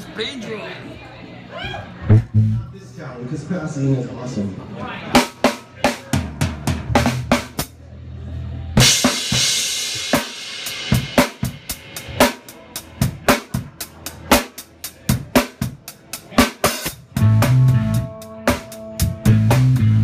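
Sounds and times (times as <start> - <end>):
rock drum kit playing: 2.1 - 2.7, 5.2 - 7.7, 8.8 - 20.0.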